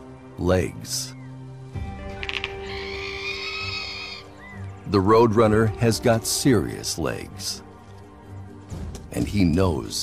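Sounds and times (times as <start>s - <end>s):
background music low notes: 0.0s - 10.0s.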